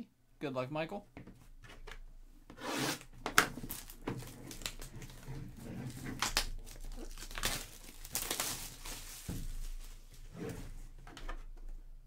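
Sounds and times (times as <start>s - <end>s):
scrape on cardboard: 2.6s - 3.0s.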